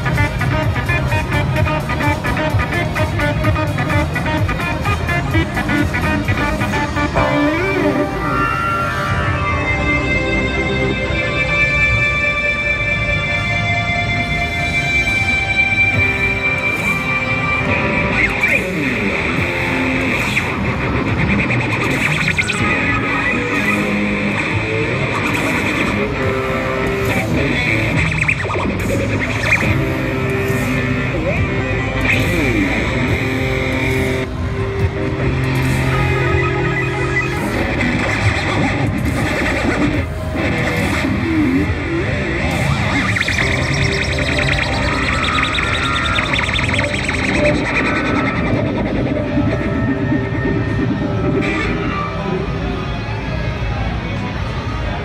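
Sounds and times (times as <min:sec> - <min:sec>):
heavily effected electric guitars: 0:00.0 - 0:55.0.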